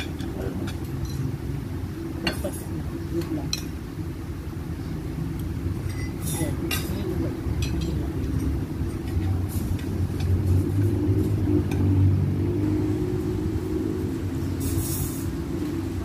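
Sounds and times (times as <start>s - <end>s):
low rumble with hum: 0.0s - 16.0s
cutlery clinking on plates: 5.8s - 10.6s.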